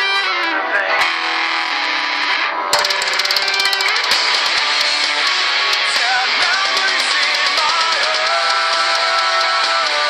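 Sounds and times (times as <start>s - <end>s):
electric guitar playing: 0.0s - 9.6s
heavy metal band track: 0.0s - 10.0s
drums and cymbals: 2.8s - 10.0s.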